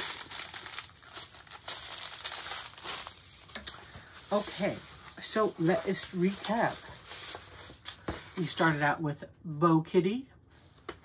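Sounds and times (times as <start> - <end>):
plastic packaging crinkling: 0.0 - 8.8.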